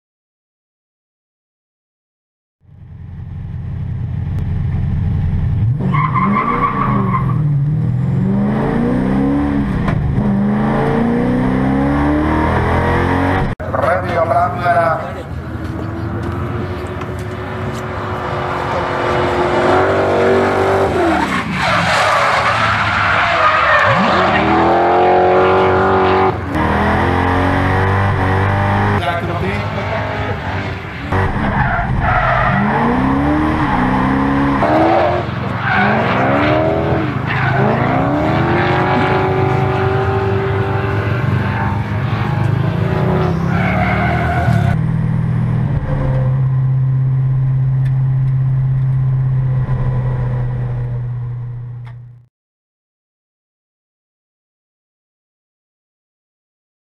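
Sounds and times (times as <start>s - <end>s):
low engine drone: 2.6s - 5.9s, 44.7s - 52.2s
car engine revving: 2.8s - 52.2s
tyres skidding: 4.1s - 52.1s.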